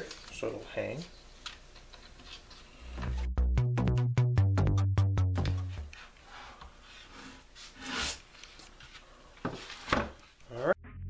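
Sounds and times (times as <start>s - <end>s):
electronic music with a beat: 3.0s - 6.0s.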